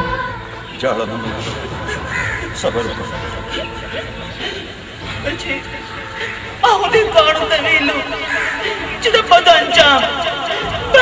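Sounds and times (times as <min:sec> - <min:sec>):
woman crying: 0:01.5 - 0:11.0.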